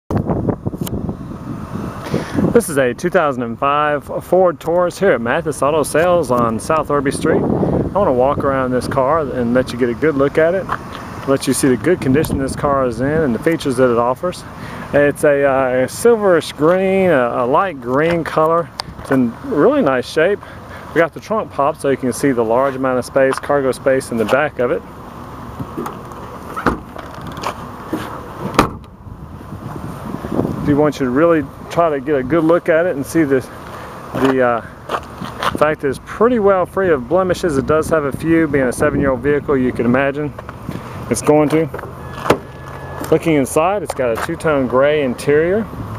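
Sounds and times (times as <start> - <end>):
wind buffeting microphone: 0.1 - 3.0, 5.4 - 13.4, 28.4 - 31.6, 37.3 - 41.1
car trunk lid shutting: 25.6 - 29.0, 41.7 - 43.1.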